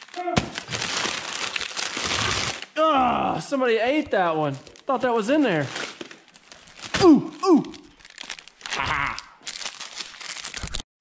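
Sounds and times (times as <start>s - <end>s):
plastic wrappers crinkling: 0.0s - 2.8s, 3.8s - 10.9s.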